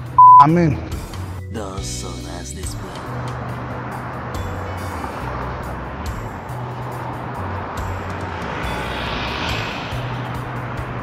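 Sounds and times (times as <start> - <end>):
noisy haze: 7.8 - 11.0.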